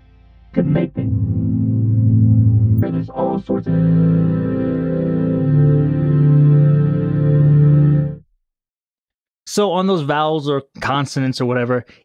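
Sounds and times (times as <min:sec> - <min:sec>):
sustained vocoded synthesizer chord: 0:00.1 - 0:08.2.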